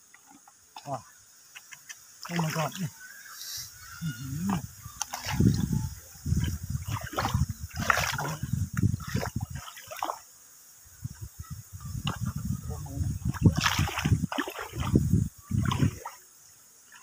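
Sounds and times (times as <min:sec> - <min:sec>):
muddy water splashing and sloshing: 0:01.8 - 0:02.8, 0:04.2 - 0:10.3, 0:11.9 - 0:16.2.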